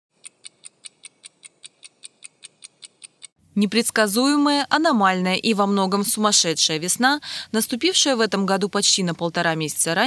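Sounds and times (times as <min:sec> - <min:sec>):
quick clock-like ticking: 0:00.1 - 0:03.4.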